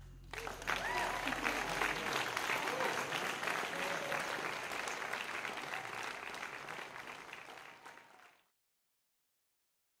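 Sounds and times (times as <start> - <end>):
audience applause: 0.3 - 8.5.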